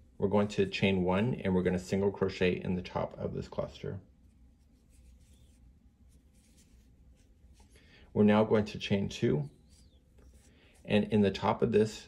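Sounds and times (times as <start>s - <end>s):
yarn rubbing over crochet hook: 4.1s - 7.7s.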